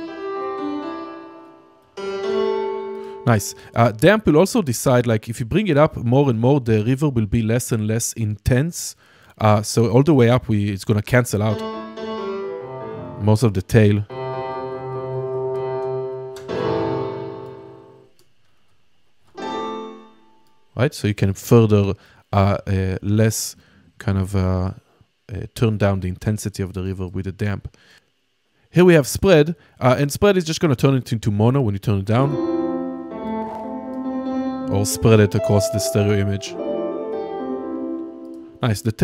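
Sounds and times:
piano chords with long reverb: 0.0s - 3.8s, 11.5s - 13.4s, 14.1s - 18.1s, 32.2s - 38.6s.

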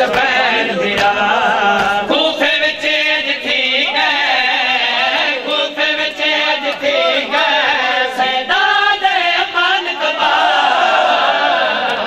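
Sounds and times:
rhythmic chest-beating slaps: 0.0s - 10.9s, 11.6s - 12.0s
men chanting a lament: 0.0s - 12.0s.

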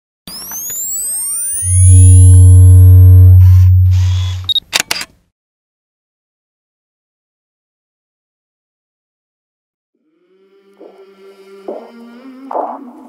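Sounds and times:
rising synth pitch sweeps: 0.3s - 4.5s
steady higher synth tones: 0.3s - 4.5s
deep synth bass tone: 1.5s - 4.5s
camera shutter clicks: 3.9s - 5.2s.

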